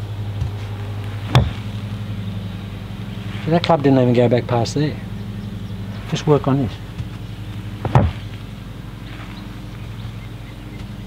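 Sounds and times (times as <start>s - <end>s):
steady low hum: 0.0s - 11.0s
golf club striking ball: 0.4s - 3.7s, 6.8s - 9.2s.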